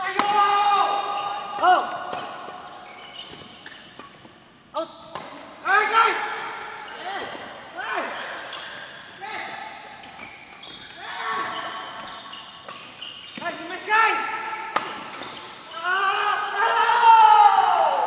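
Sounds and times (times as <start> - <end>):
shoes squeaking on court floor: 0.8 - 5.4, 6.4 - 16.6
racket hitting shuttlecock: 14.3 - 15.6.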